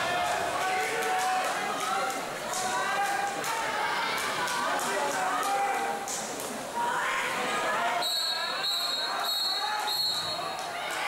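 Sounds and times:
crowd talking in echoing hall: 0.0 - 11.0.

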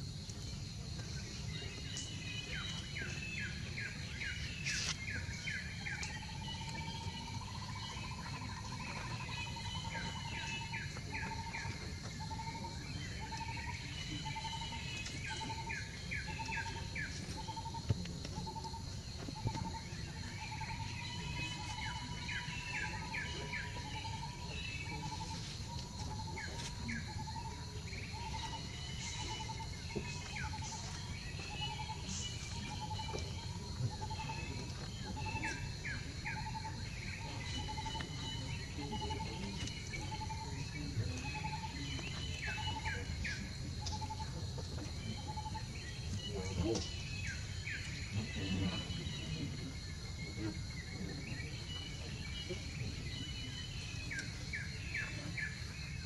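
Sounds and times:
birds chirping trills: 0.5 - 56.0.

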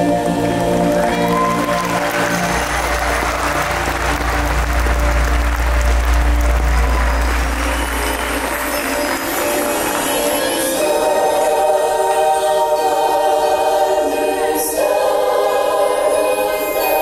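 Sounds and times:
low musical rumble: 0.0 - 9.2
audience applauding: 0.0 - 10.8
held musical chord: 0.0 - 15.0.

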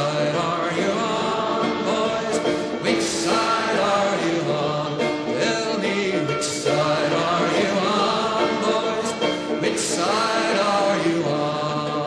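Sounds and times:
folk song voices singing: 0.0 - 12.0.

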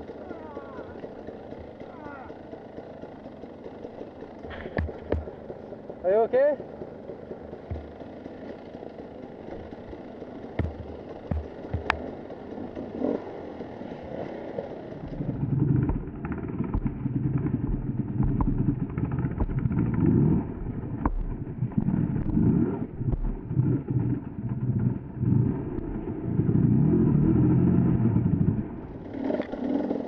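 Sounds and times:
motorcycle engine: 0.0 - 30.0
sharp clicks and knocks: 4.4 - 5.6, 7.1 - 8.6, 10.6 - 12.2, 15.8 - 24.4.

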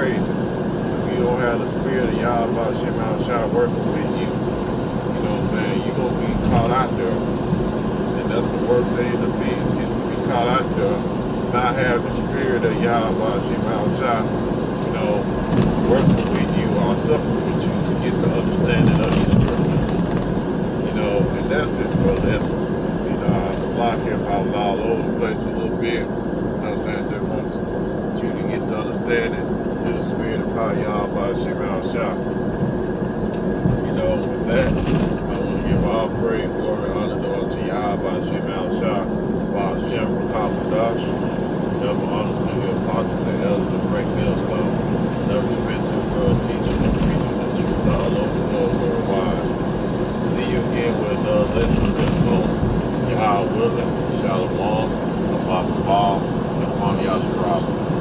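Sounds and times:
indistinct voices murmuring: 0.0 - 4.5, 5.1 - 7.4, 8.1 - 32.2, 33.4 - 58.0
vehicle engine and road noise: 0.0 - 58.0.

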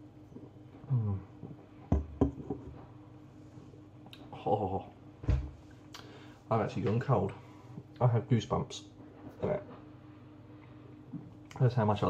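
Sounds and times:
glass knocking on worktop: 1.9 - 2.8.

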